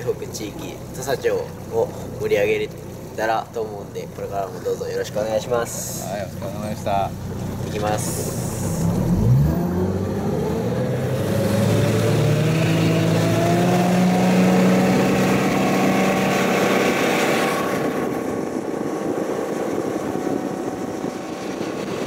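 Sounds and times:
outboard motor accelerating: 0.0 - 22.0
rushing drone of boat running: 0.0 - 22.0.

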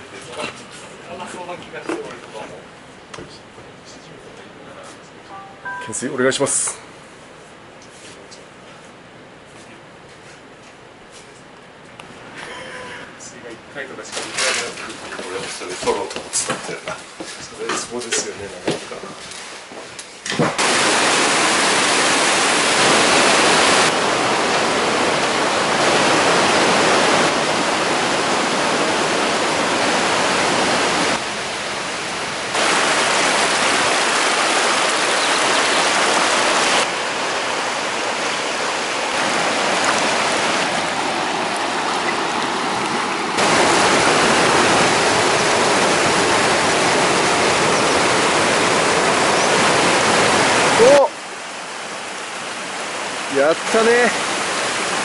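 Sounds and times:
river rushing over boulders: 20.4 - 55.0.

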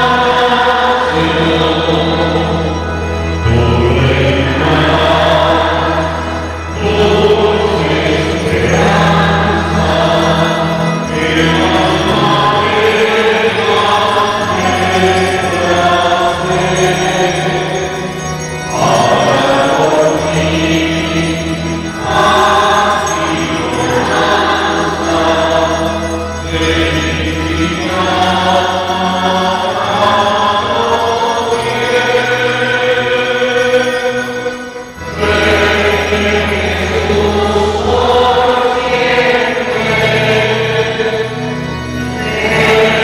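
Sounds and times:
choir singing a hymn: 0.0 - 43.0.

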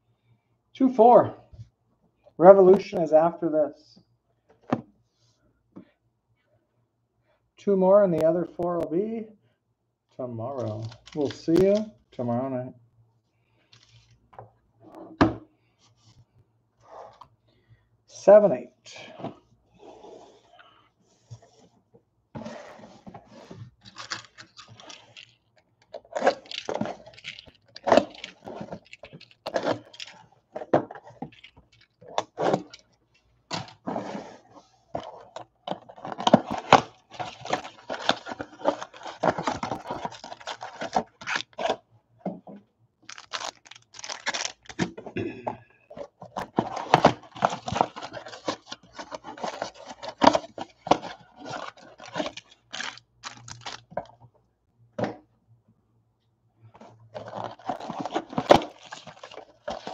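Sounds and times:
foil packs crinkling: 10.6 - 11.9, 23.4 - 32.9, 35.0 - 41.8, 43.0 - 44.9, 46.3 - 54.1, 57.1 - 59.9
boxes scraping on table: 19.1 - 21.7, 22.4 - 25.4, 33.5 - 41.8
cardboard tearing: 22.4 - 25.4, 26.0 - 30.2, 35.9 - 41.8, 43.1 - 44.8, 46.5 - 54.0, 57.2 - 59.9.

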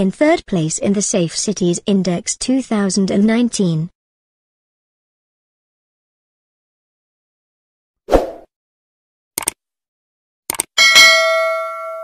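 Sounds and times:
notification bell ding: 10.8 - 12.0.

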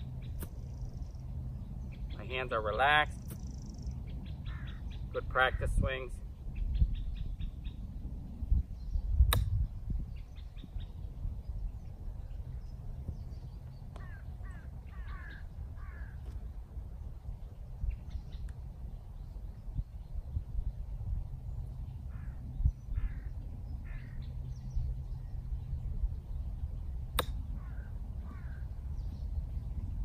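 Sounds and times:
wind rumbling on microphone: 0.0 - 30.0
crow cawing: 4.5 - 4.8, 14.0 - 16.2, 23.0 - 24.2, 27.6 - 28.6
golf iron strike: 9.3 - 9.6, 27.1 - 27.5.

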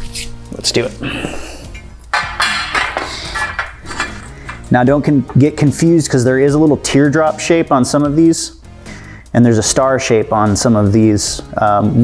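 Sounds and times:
background music: 0.0 - 12.0
metal clinks and scrapes: 2.1 - 5.6.

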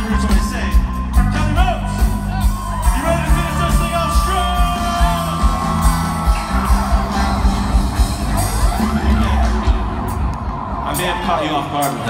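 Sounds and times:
crowd whooping: 0.0 - 12.0
live reggae band playing: 0.0 - 12.0.

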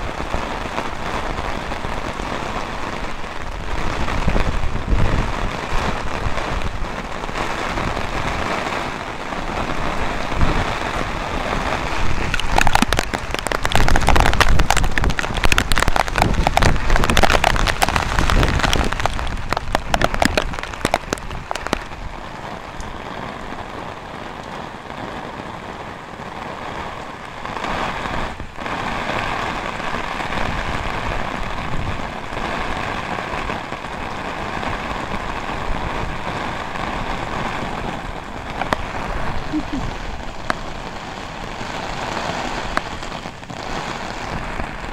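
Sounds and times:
heavy rain drumming on an umbrella: 0.0 - 44.9
raindrop taps: 12.1 - 22.0, 37.9 - 39.7.

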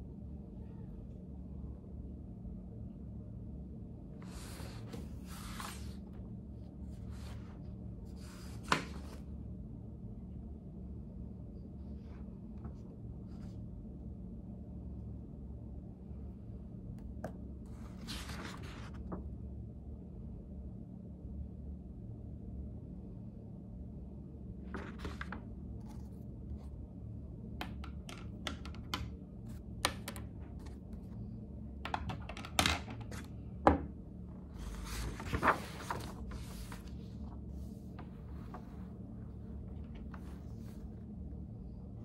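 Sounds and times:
low room hum: 0.0 - 42.0
notebook pages turning: 4.2 - 6.2, 6.9 - 9.3, 17.2 - 19.2, 24.7 - 26.7, 27.6 - 31.2, 31.9 - 33.3, 34.5 - 41.1
pens tapping on desk: 27.6 - 29.1, 31.8 - 33.0.

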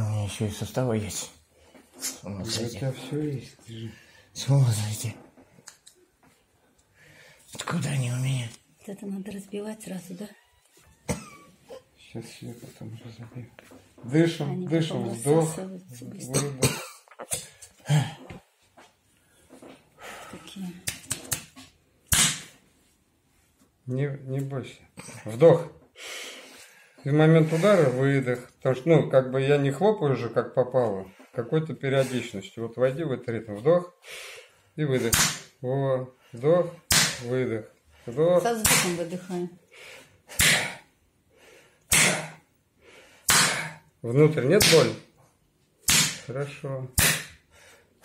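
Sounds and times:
faint breaths: 3.0 - 4.5, 6.4 - 7.6, 19.1 - 20.8, 25.9 - 28.2, 33.9 - 34.8, 39.6 - 44.0, 47.4 - 48.0
hand slapping bare chest: 20.8 - 22.6, 35.0 - 35.6, 36.9 - 37.3, 38.6 - 39.0, 40.3 - 40.8, 41.9 - 42.4, 43.3 - 43.8, 44.5 - 45.1, 45.8 - 46.3, 46.9 - 47.5.

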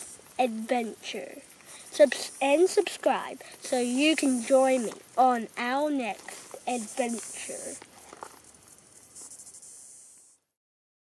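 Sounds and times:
insect buzzing trill: 0.0 - 10.6.

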